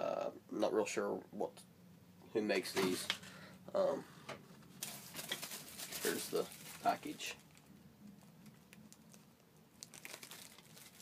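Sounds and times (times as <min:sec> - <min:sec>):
plastic bag crinkling: 0:04.8 - 0:11.0.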